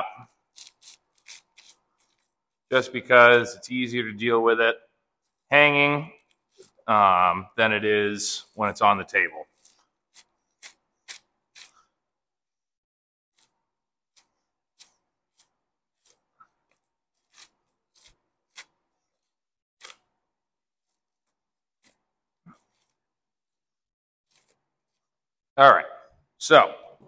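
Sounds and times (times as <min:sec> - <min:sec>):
knife cutting meat: 0:00.5 - 0:02.3, 0:09.5 - 0:11.9, 0:13.4 - 0:20.2, 0:24.3 - 0:25.0.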